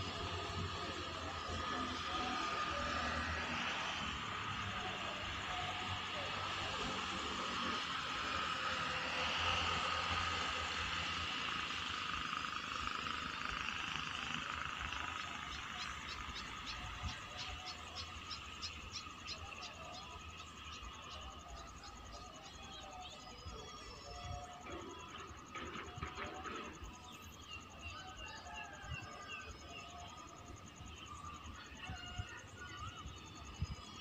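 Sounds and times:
insects or frogs ticking: 0.0 - 34.0
steady outdoor hiss: 0.0 - 34.0.

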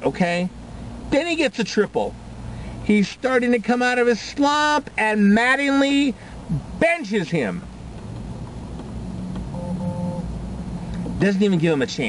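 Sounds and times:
low vehicle rumble in car cabin: 0.0 - 12.0
two-note electronic beep: 9.5 - 10.2.

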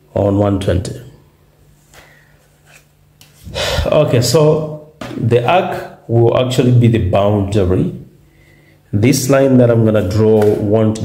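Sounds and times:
man speaking: 0.0 - 1.2, 3.5 - 8.1, 8.9 - 11.0
man breathing in: 3.4 - 3.9, 8.2 - 8.9.

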